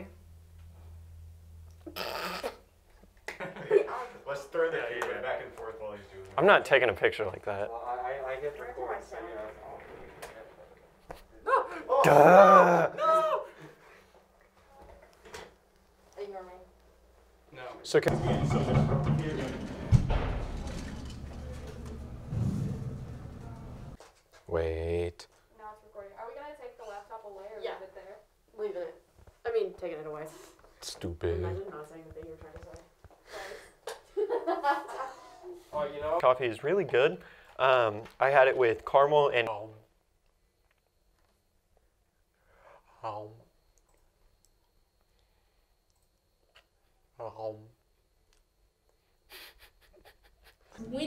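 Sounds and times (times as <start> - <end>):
voices in echoing room: 3.3 - 40.0, 50.7 - 51.0
man's short falling voiced sound: 11.9 - 13.5
man breathing: 42.3 - 43.0.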